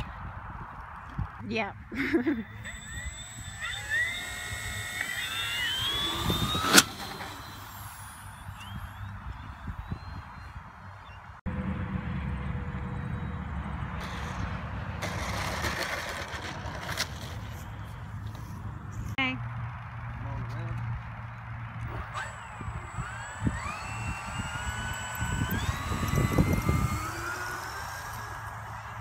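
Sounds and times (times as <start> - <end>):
wind rumble on microphone: 0.0 - 1.9, 8.4 - 13.8, 21.8 - 28.3
electric motor whining: 2.4 - 10.2, 21.8 - 29.0.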